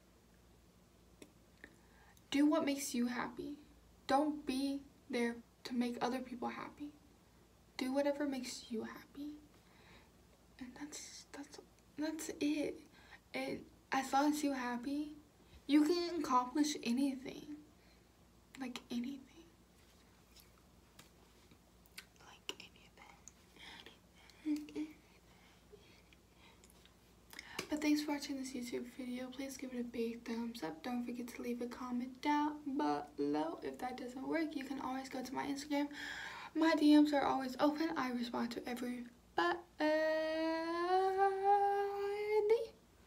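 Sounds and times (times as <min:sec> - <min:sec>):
woman whispering faintly: 0:22.0 - 0:25.1.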